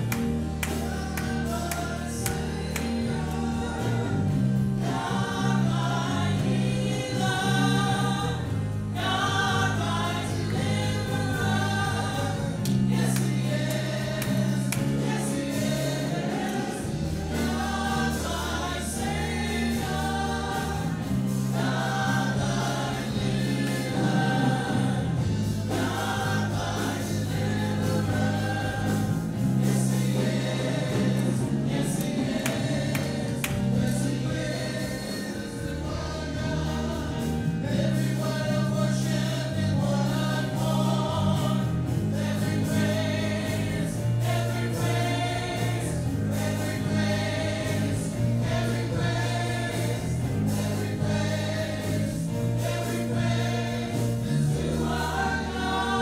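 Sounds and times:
voices singing together: 0.0 - 56.0.

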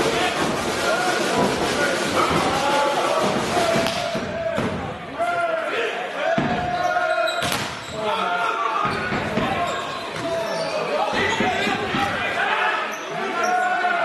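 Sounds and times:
crowd voices: 0.0 - 14.0
players shouting: 0.0 - 14.0.

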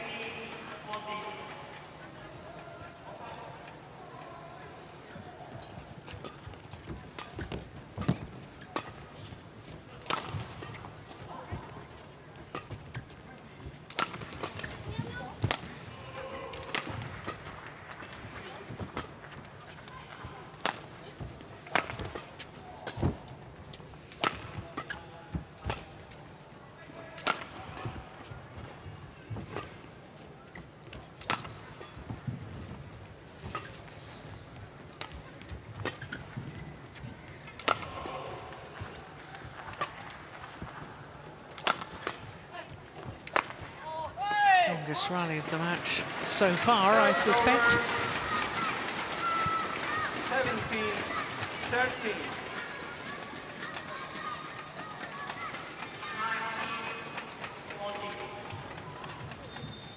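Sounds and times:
racquet striking shuttlecock: 10.0 - 10.9, 13.9 - 15.8, 16.5 - 18.2, 20.6 - 21.0, 21.6 - 23.3, 27.2 - 28.0, 31.2 - 32.2, 37.0 - 40.8, 41.5 - 42.4, 43.0 - 43.8.

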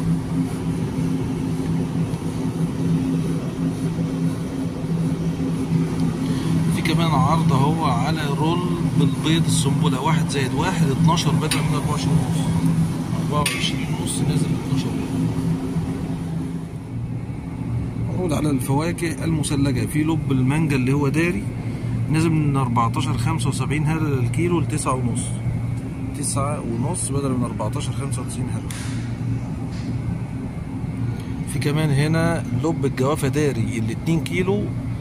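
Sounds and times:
freezer cabinets humming: 0.0 - 35.0.

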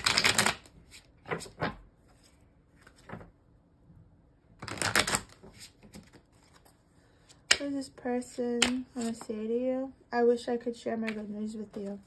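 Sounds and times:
cards being shuffled: 0.0 - 3.3, 4.6 - 7.6.

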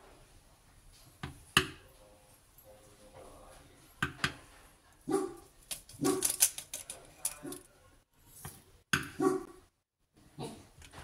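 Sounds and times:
dog barking: 5.0 - 6.4, 9.1 - 9.7, 10.4 - 10.7.

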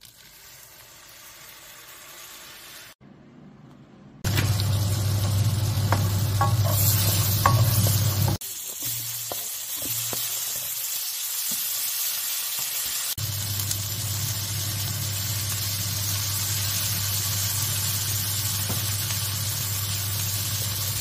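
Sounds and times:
food sizzling in frying pan: 0.0 - 3.0, 4.3 - 21.0.

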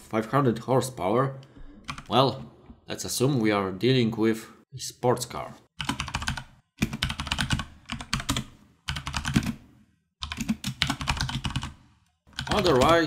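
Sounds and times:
computer keyboard typing: 5.8 - 9.6, 10.2 - 13.0.

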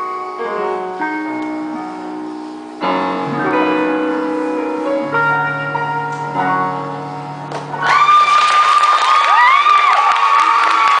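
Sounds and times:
piano chord: 0.0 - 8.1
audience applauding and cheering: 7.8 - 11.0.

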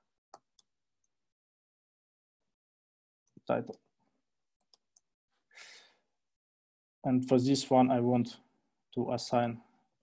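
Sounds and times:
soft breath: 5.5 - 6.1.

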